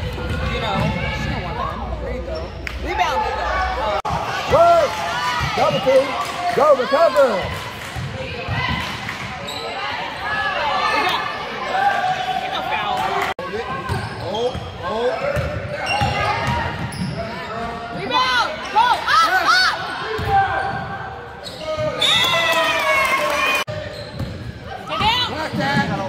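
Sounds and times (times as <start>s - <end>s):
sneakers squeaking: 0.0s - 3.1s, 8.0s - 12.4s, 13.7s - 22.3s, 23.7s - 26.0s.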